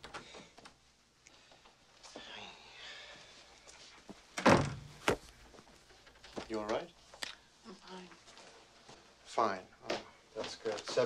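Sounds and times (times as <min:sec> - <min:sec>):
wooden door thudding shut: 0:04.4 - 0:05.0.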